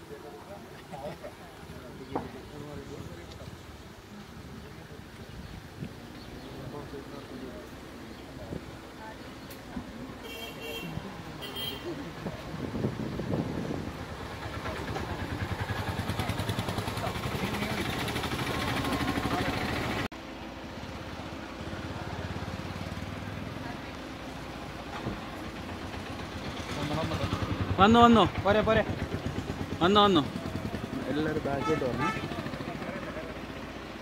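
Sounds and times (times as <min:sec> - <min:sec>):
voices in background: 0:00.0 - 0:20.1, 0:21.6 - 0:34.0
vehicle engine running: 0:12.7 - 0:34.0.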